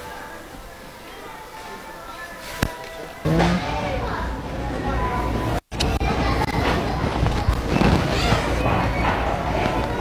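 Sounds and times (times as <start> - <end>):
music: 0.0 - 6.4
indistinct voices: 0.0 - 10.0.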